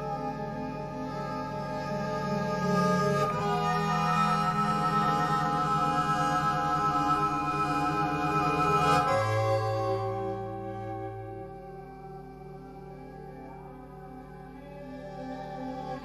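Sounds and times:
bandoneon playing slow chords: 0.0 - 16.0.

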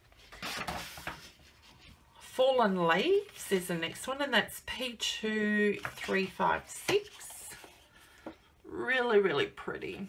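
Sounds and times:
paper rustling: 0.0 - 2.3, 5.7 - 8.3.

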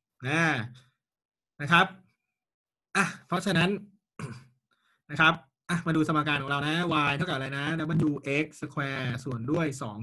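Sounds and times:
man speaking: 1.6 - 2.0, 3.0 - 3.9, 5.1 - 10.0.

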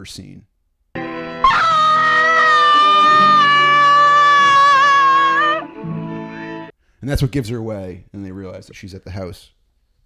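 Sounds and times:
film music score: 1.0 - 6.7
woman screaming: 1.4 - 5.8.

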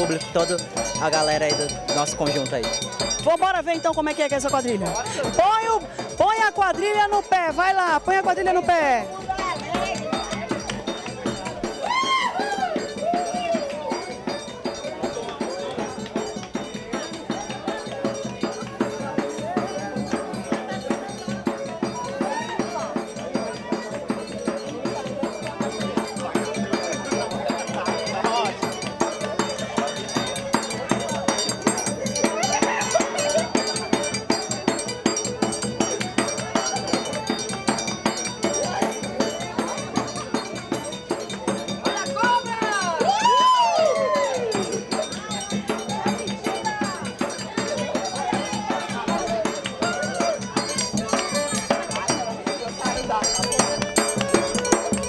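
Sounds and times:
bass drum beat: 0.0 - 55.0
voices: 0.0 - 55.0.

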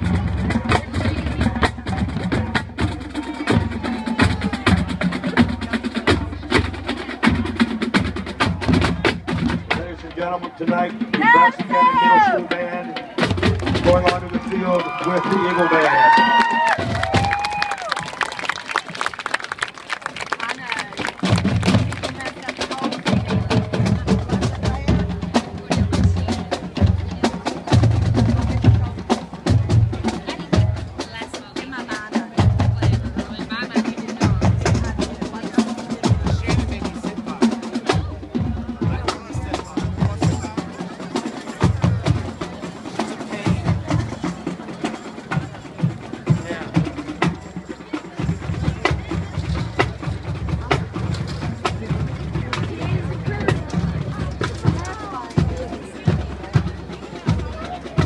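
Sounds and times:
bass drum beats: 0.0 - 18.2, 21.0 - 40.8, 45.3 - 58.0.

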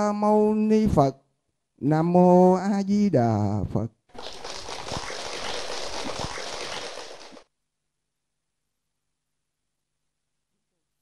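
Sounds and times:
audience applauding: 4.2 - 7.4.

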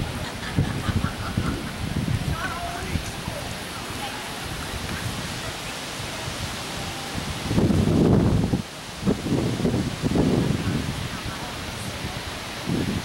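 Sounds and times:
steady outdoor hiss: 0.0 - 13.0
wind on microphone: 0.0 - 13.0.

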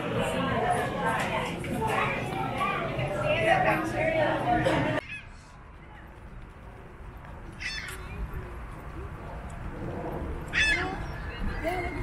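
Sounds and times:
low outdoor rumble: 1.3 - 12.0.

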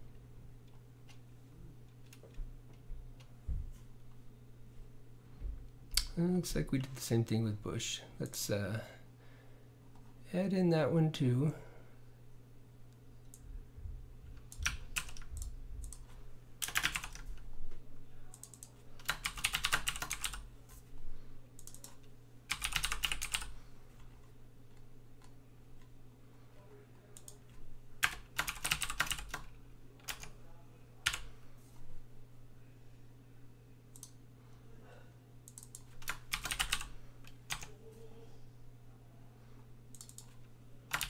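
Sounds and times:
computer keyboard typing: 14.4 - 17.3, 18.3 - 20.4, 21.6 - 23.5, 27.2 - 30.3, 31.0 - 31.3, 35.5 - 37.7, 39.9 - 41.0.

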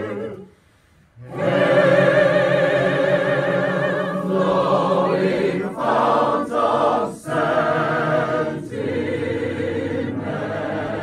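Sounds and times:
mixed chorus singing unaccompanied: 0.0 - 0.5, 1.2 - 11.0.

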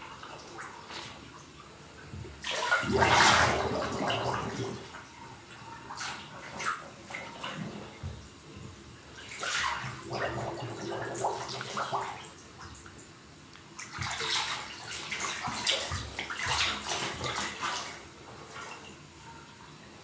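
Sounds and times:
water sloshing in bathtub: 0.0 - 20.0.

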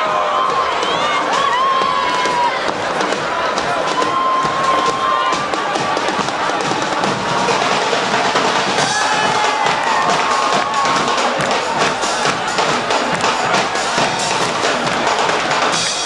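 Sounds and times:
crowd noise: 0.0 - 16.0
drums beating: 0.0 - 16.0
brass band playing: 3.3 - 16.0.

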